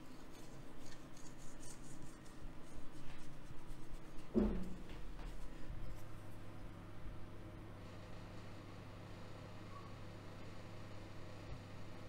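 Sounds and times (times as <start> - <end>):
fingers rubbing dough in metal pan: 0.0 - 5.5.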